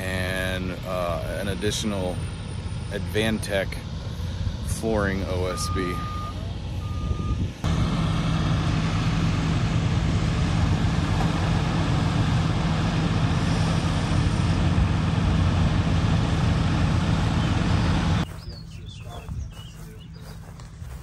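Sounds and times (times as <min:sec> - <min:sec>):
forklift engine humming: 0:03.8 - 0:21.0
backup alarm beep: 0:05.5 - 0:07.4.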